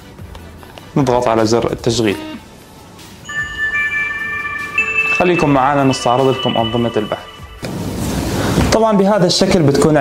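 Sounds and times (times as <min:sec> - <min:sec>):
electronic start-up tune: 0:03.3 - 0:08.4.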